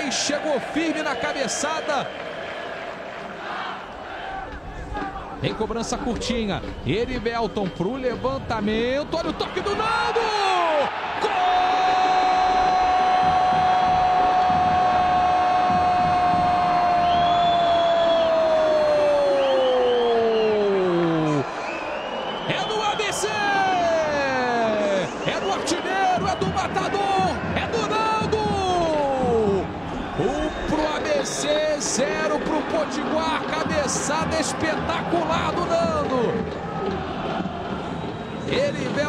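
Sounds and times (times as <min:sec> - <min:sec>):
commentator shouting: 0:22.5 - 0:36.4.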